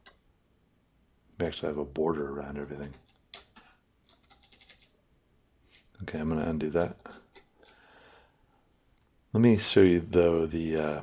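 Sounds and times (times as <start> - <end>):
faint keyboard clicks: 2.9 - 4.9.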